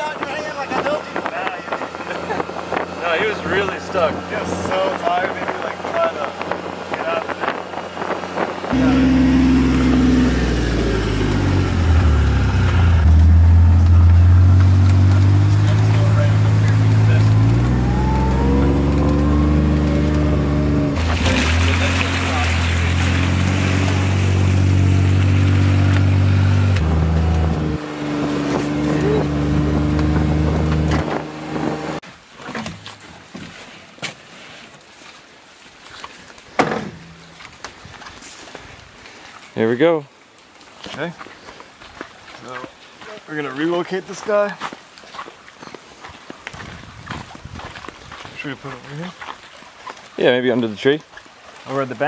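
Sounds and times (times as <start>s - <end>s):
utility vehicle engine running: 8.2s - 32.0s.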